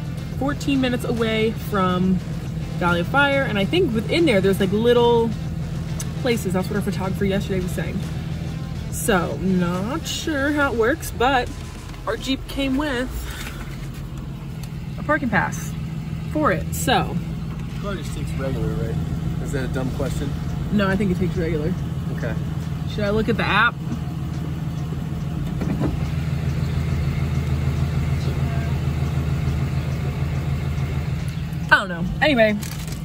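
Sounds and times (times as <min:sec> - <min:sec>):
car engine idling: 0:00.0 - 0:33.0.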